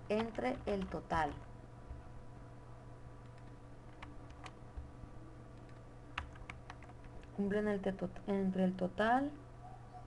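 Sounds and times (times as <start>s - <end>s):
faint steady hum: 0.0s - 10.0s
computer keyboard keystrokes: 0.1s - 2.0s, 3.2s - 4.9s, 5.6s - 7.4s.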